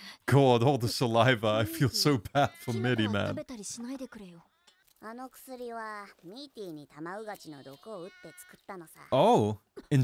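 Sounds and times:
high-pitched voice speaking: 1.6 - 3.6.

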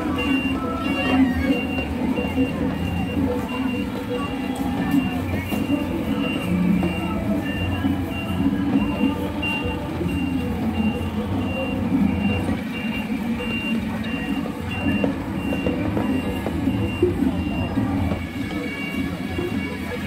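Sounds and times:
low engine rumble: 0.0 - 20.0
reversing alarm beeping: 0.0 - 20.0.

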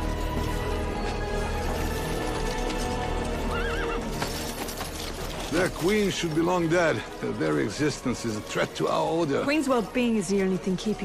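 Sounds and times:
background music: 0.0 - 11.0
hoof clops: 0.2 - 10.8
horse whinnying: 3.1 - 4.7.

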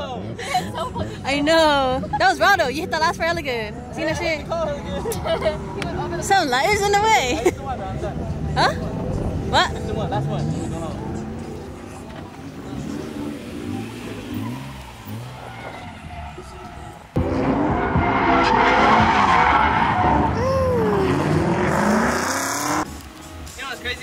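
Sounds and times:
car engine revving: 8.0 - 23.2
tires squealing and skidding: 12.6 - 22.9.

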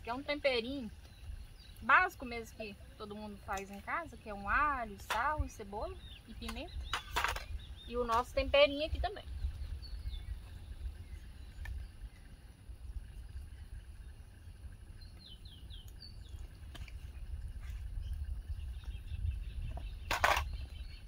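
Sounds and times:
bird chirping: 0.0 - 21.0
low rumble: 0.0 - 21.0.

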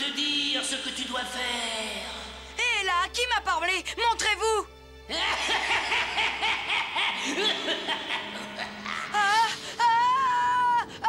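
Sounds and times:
man snickering laugh: 5.4 - 9.2.

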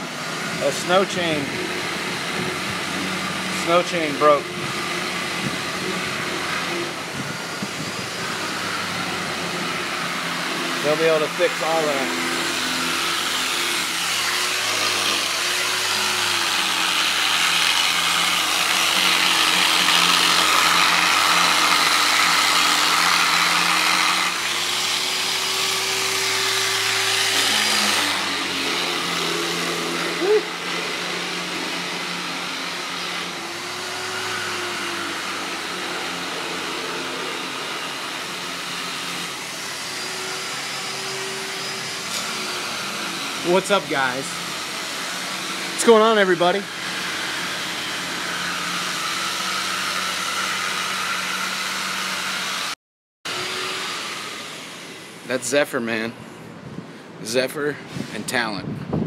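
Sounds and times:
power sander on metal: 0.0 - 56.6.

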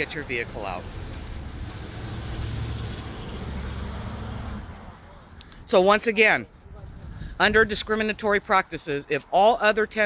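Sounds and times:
vehicle engine rumble: 0.0 - 5.7.

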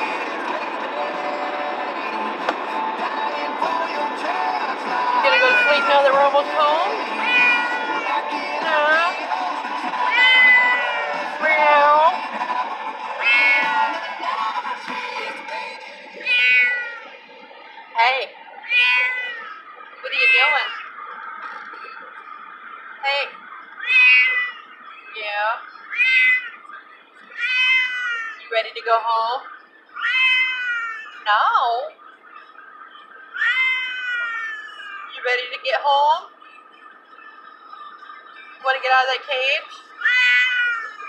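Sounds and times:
cat meowing: 5.2 - 6.2, 7.2 - 8.2, 10.1 - 11.2, 13.2 - 13.9, 16.2 - 17.1, 18.6 - 21.0, 23.8 - 24.7, 25.8 - 26.6, 27.3 - 28.4, 30.0 - 31.2, 33.3 - 35.1, 40.0 - 41.0.

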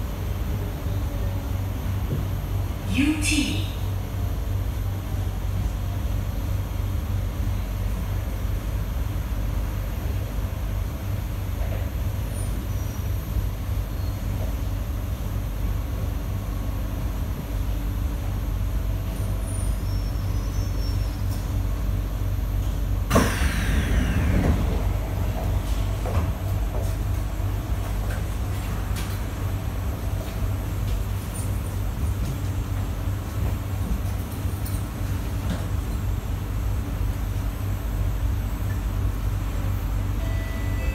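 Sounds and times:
train carriage low rumble: 0.0 - 40.9
whine falling in pitch: 23.1 - 26.8.

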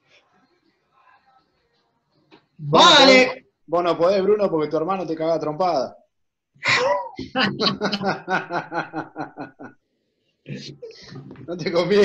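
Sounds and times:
person laughing: 6.7 - 9.7.

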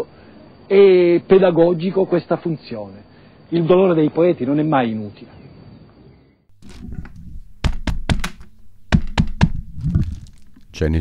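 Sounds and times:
knocking on a door: 7.6 - 9.7.

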